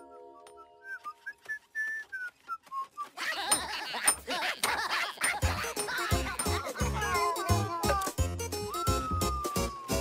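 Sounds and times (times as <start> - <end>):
cartoon character whistling: 8.7 - 10.0.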